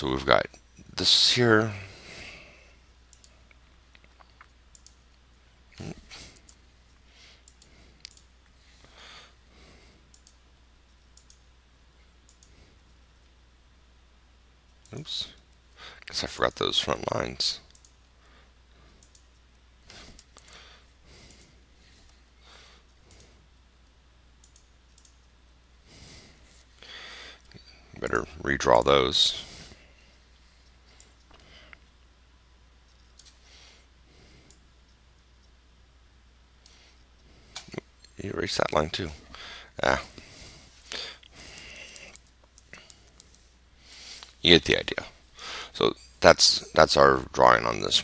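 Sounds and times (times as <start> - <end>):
low electrical hum: 0.0 - 48.0
faint computer mouse clicking: 3.1 - 5.2, 7.4 - 8.6, 10.1 - 11.5, 12.2 - 13.0, 17.7 - 18.0, 19.0 - 20.6, 24.4 - 25.3, 32.9 - 33.4, 34.4 - 35.6, 41.5 - 43.4.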